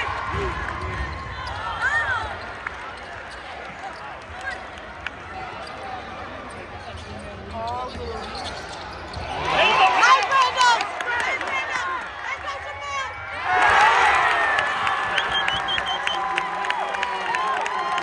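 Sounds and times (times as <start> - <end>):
players and spectators shouting: 9.2 - 18.0.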